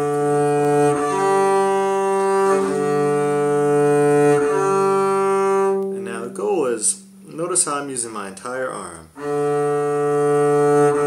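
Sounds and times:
double bass bowed harmonics: 0.0 - 11.0
man talking: 6.0 - 9.2.

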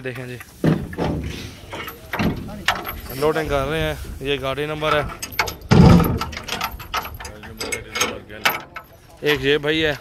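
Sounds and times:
scattered clicks and rattles: 0.1 - 9.6
heavy thump: 0.6 - 3.1, 4.9 - 6.5.

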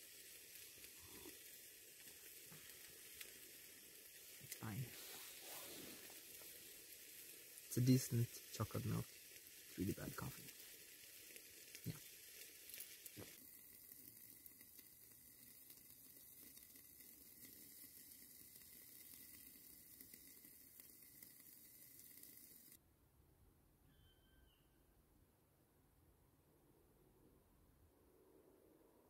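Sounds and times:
faint sizzling from covered pot: 0.0 - 22.8.

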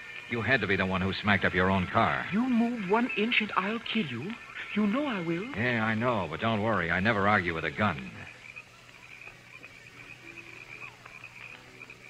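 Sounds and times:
night creatures chirping: 0.0 - 12.0.

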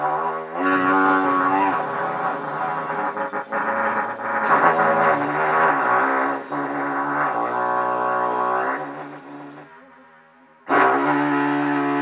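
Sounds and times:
trumpet playing low held notes: 0.0 - 12.0.

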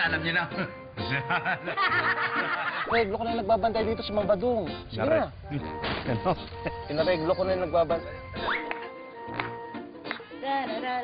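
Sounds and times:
light background music: 0.0 - 11.0
people laughing: 1.1 - 2.9, 5.5 - 6.9.

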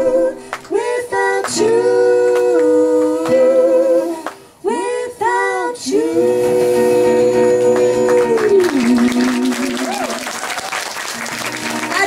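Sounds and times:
quiet acoustic guitar: 0.0 - 10.1, 11.2 - 12.0
woman and man singing in harmony: 0.0 - 10.3.

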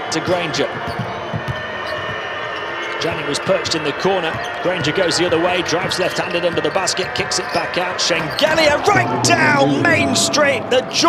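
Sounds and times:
arena noise: 0.1 - 11.0
basketball dribbling on court: 3.6 - 7.6.

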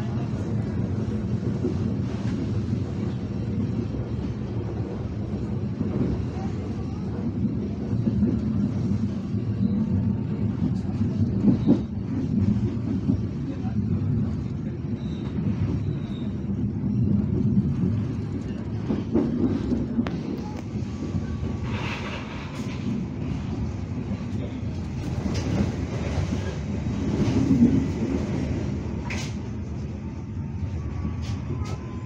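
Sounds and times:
train wheels rumbling on rails: 0.0 - 32.0.

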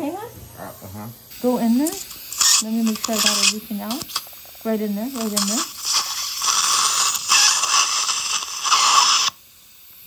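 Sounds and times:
dental suction sucking hiss: 1.3 - 10.0.

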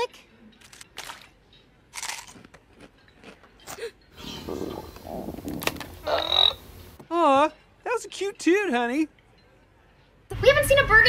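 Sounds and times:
crunching and chewing food: 0.5 - 6.6.

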